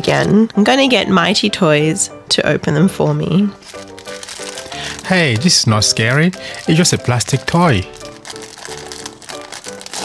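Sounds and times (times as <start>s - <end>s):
background music with held notes: 0.0s - 10.0s
plastic packet crinkling: 3.6s - 10.0s.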